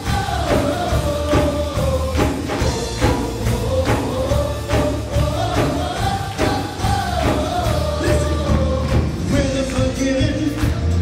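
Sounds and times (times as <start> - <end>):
voices singing together: 0.0 - 10.9
keyboard: 0.0 - 11.0
steady drum beat: 0.0 - 11.0.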